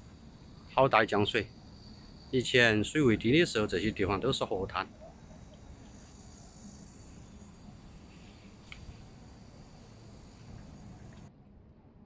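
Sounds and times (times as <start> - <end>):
insects chirring: 0.0 - 11.3
low background rumble: 0.0 - 12.0.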